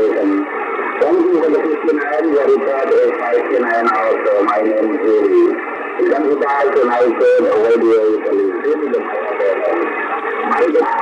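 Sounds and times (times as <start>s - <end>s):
static hiss: 0.0s - 11.0s
thin radio voice: 0.0s - 11.0s.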